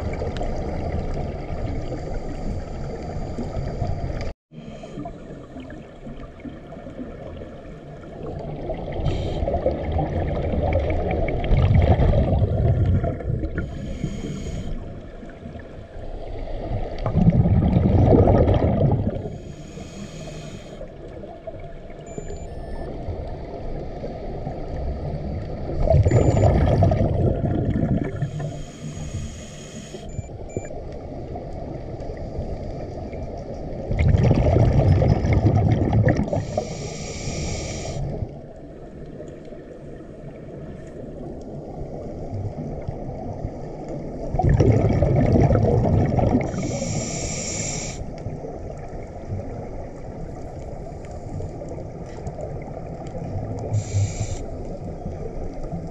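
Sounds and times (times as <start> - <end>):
exhaust bubbles rumbling: 5.1 - 13.8, 16.7 - 19.4, 25.3 - 28.4, 33.8 - 36.7, 42.3 - 46.8
scuba regulator inhale hiss: 9.0 - 9.6, 13.6 - 15.0, 19.2 - 20.9, 28.2 - 30.1, 36.3 - 38.3, 46.4 - 48.2, 53.6 - 54.7.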